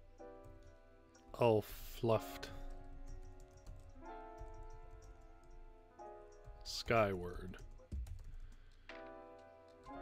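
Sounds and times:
soft background music: 0.0s - 10.0s
keyboard typing: 2.4s - 10.0s.

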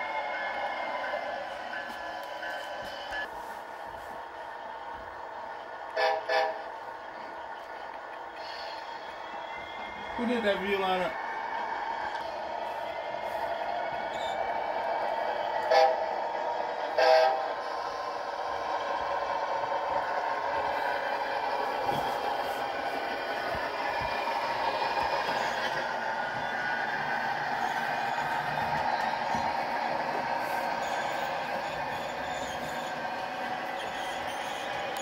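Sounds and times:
model train running: 0.0s - 35.0s
model locomotive horn blasts: 6.0s - 6.7s, 15.6s - 16.1s, 16.9s - 17.6s.

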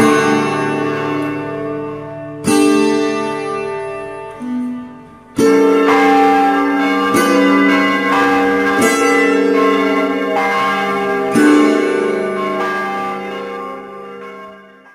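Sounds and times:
church bells ringing: 0.0s - 14.9s.

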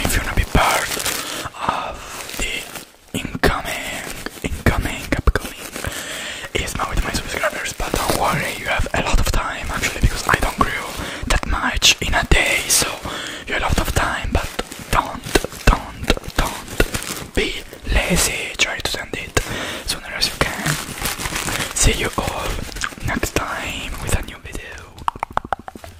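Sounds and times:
close whispering: 0.0s - 25.6s
mouth sounds: 0.0s - 25.9s
plastic bag crinkling: 0.0s - 25.9s
mouth clicks: 14.3s - 17.3s, 22.6s - 25.9s.

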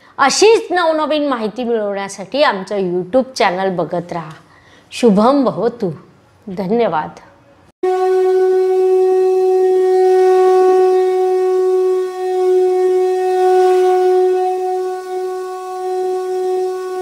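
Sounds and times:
long wind instrument note: 7.8s - 17.0s.

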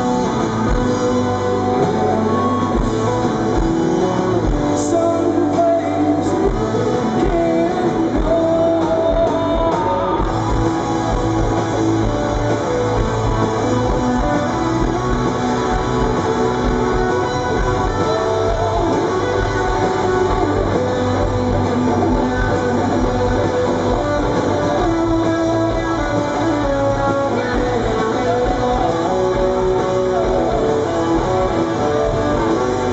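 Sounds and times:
live rock band playing: 0.0s - 32.9s
strummed electric guitar: 0.0s - 32.9s.

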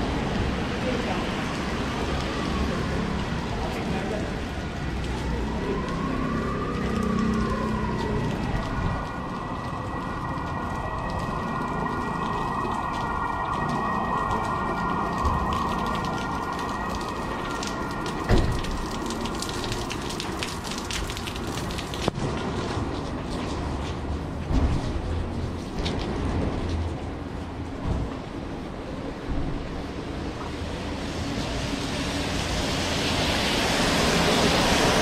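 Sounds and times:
rain falling on street: 0.0s - 35.0s.

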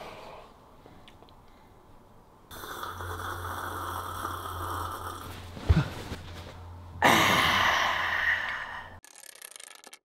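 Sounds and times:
person gasping loudly: 7.0s - 9.0s.

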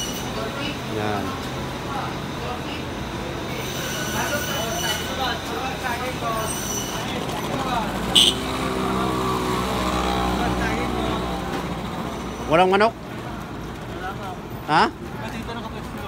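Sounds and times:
voices of passers-by: 0.0s - 16.0s.

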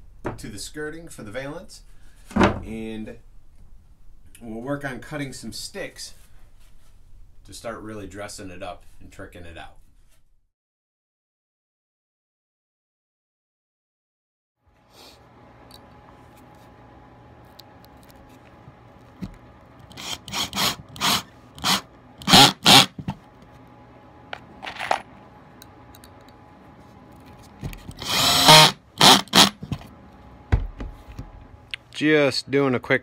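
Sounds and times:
cordless drill bursts: 19.9s - 23.0s, 28.0s - 29.6s.

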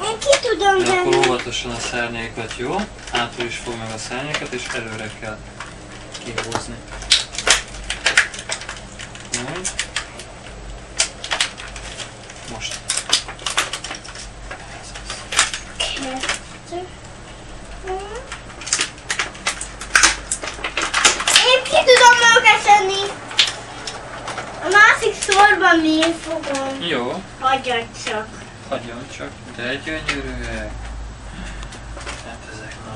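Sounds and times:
young child's voice: 0.0s - 1.4s, 15.8s - 17.0s, 17.8s - 18.3s, 21.3s - 23.2s, 24.6s - 26.8s, 27.4s - 28.4s
plastic toy parts clicking: 18.0s - 22.4s.

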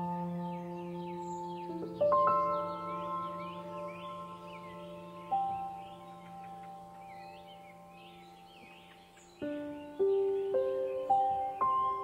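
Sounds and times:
bell-like ambient music notes: 0.0s - 12.0s.

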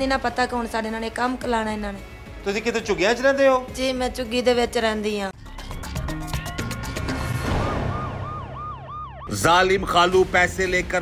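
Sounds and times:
yelping siren: 6.5s - 9.5s.

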